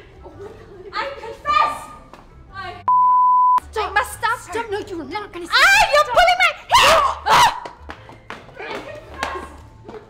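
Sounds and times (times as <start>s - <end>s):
high-pitched censor bleep: 2.9s - 3.6s.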